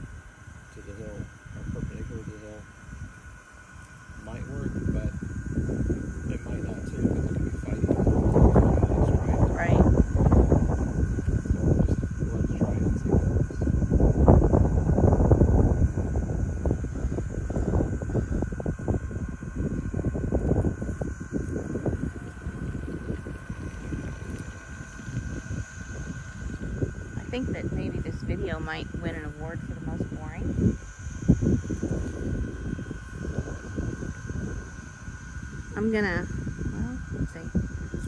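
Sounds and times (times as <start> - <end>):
faint high whine: 0.0 - 38.0
wind buffeting microphone: 0.0 - 38.0.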